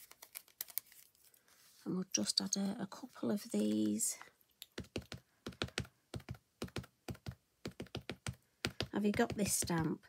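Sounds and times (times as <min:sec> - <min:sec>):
ink pad tapping on stamp: 0:04.8 - 0:09.9.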